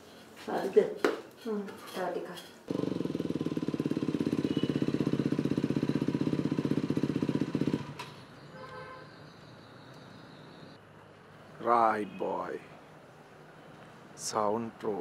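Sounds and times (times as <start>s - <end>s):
dirt bike engine idling: 2.7s - 8.2s.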